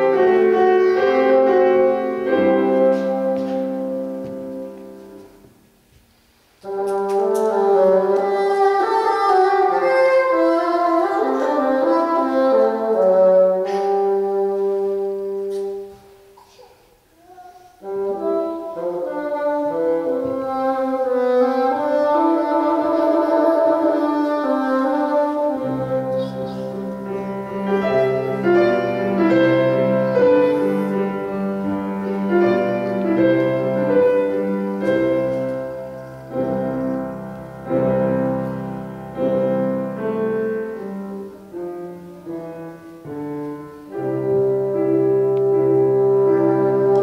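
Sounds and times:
bassoon solo melody: 0:00.0 - 0:05.2, 0:06.6 - 0:15.8, 0:17.8 - 0:47.0.

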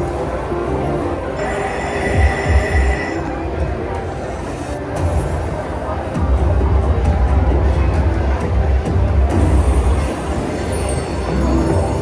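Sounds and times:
slot machine prize music: 0:01.4 - 0:03.3, 0:10.2 - 0:12.0
steady high tone: 0:01.4 - 0:03.5.

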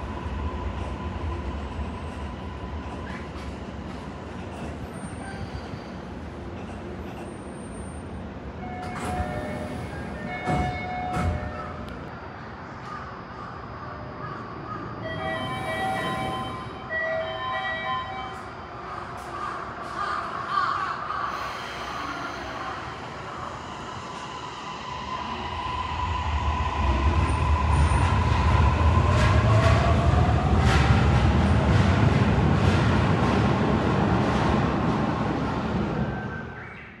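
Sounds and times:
electric train rumble: 0:00.0 - 0:36.6.

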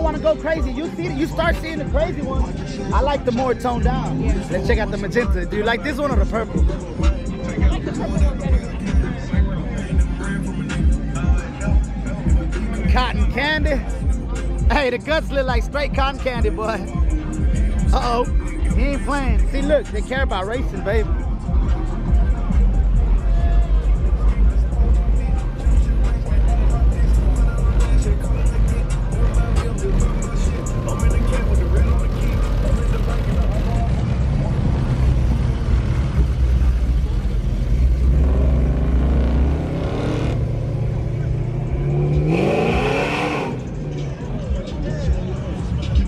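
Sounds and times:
car exhaust rumble: 0:00.0 - 0:46.0.

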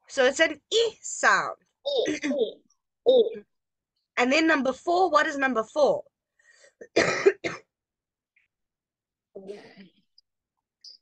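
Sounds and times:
person coughing: 0:06.8 - 0:07.7.

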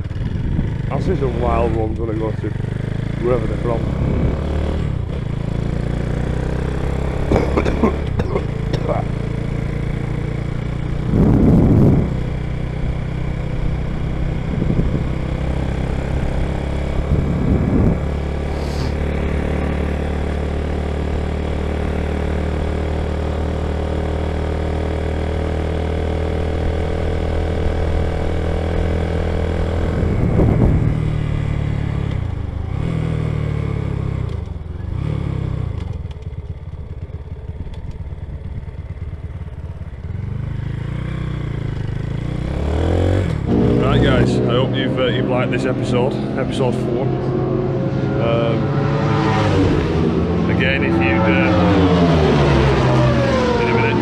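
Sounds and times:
small motorcycle engine running: 0:00.0 - 0:47.1, 0:47.7 - 0:54.0.

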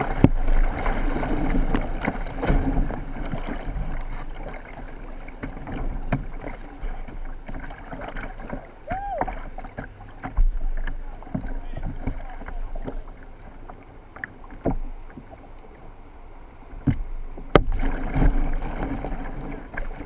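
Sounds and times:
paddle strokes splashing water: 0:00.0 - 0:20.0.

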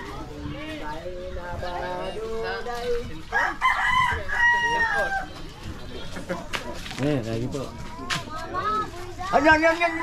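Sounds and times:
rooster crowing: 0:03.3 - 0:05.3.

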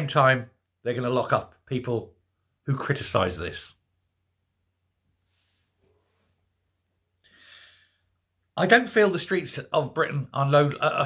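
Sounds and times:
man breathing: 0:07.2 - 0:08.2.

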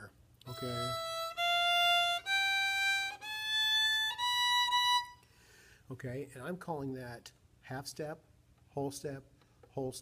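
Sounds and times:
violin sustained notes: 0:00.5 - 0:05.2.

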